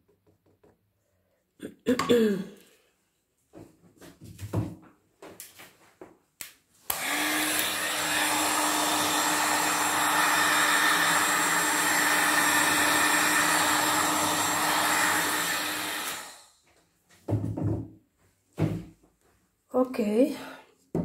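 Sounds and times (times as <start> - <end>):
heat gun blowing air: 6.9 - 16.6.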